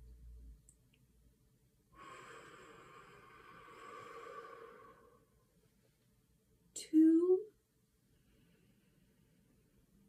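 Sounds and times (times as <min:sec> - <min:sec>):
person breathing out slowly: 0:01.9 - 0:05.4.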